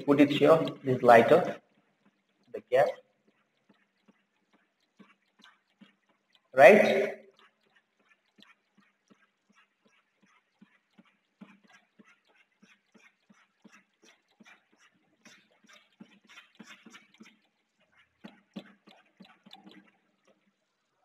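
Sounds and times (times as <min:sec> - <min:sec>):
chalk scratching on chalkboard: 0:00.0 - 0:20.4.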